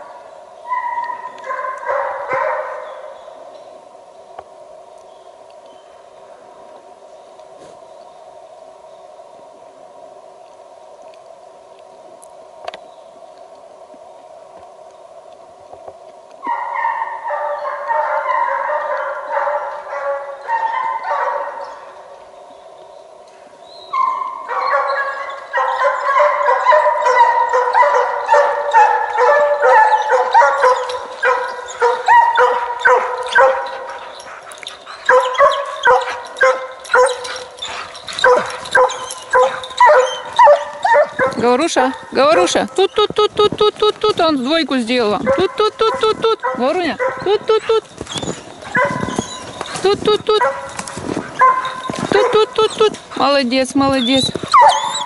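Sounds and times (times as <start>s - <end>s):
hound baying: 24.0s - 44.3s, 45.2s - 53.4s, 54.0s - 55.0s.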